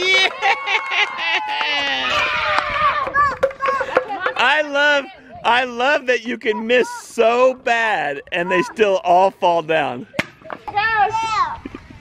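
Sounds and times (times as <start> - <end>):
child shouting: 1.6 - 4.2, 8.4 - 8.8, 10.7 - 11.6.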